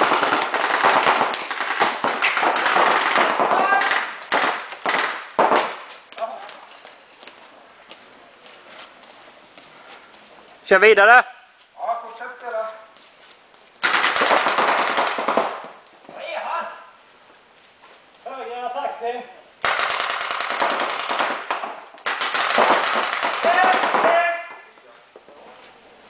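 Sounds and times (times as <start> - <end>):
rapid volleys of marker shots: 0.0 - 5.9, 13.8 - 15.8, 19.6 - 24.2.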